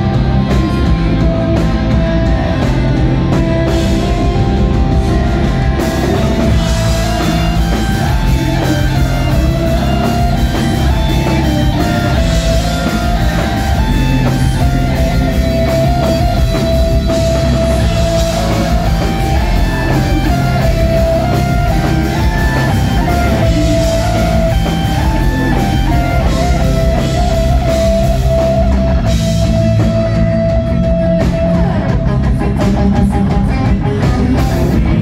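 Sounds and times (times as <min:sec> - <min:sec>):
repeating guitar melody: 0:00.0 - 0:35.0
rock band playing live: 0:00.0 - 0:35.0.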